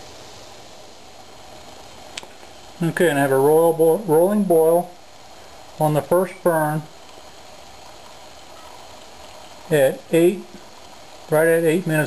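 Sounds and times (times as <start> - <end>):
stove flame hissing: 0.0 - 12.0
water boiling: 0.0 - 12.0.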